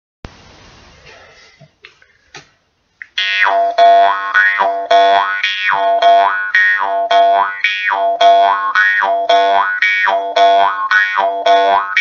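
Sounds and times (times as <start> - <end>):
jaw harp twanging: 3.2 - 12.0.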